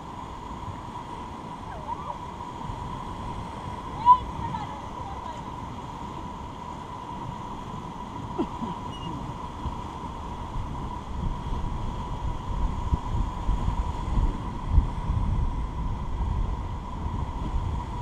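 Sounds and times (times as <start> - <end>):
faint steady whine: 0.0 - 18.0
whitewater rapids rushing: 0.0 - 18.0
wind buffeting microphone: 0.0 - 18.0.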